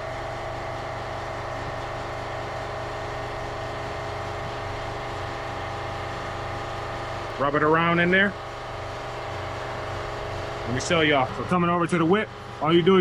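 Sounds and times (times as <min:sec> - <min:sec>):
steady machine drone: 0:00.0 - 0:13.0.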